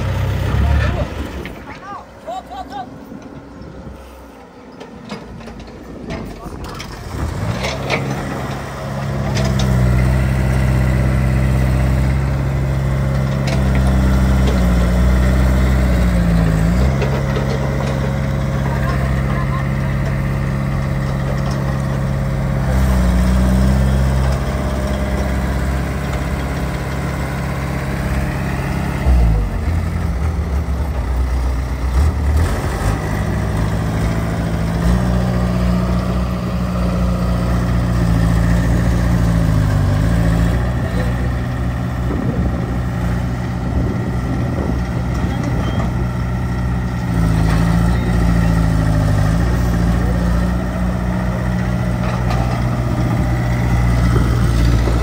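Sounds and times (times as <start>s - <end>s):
excavator diesel engines running: 0.0s - 55.0s.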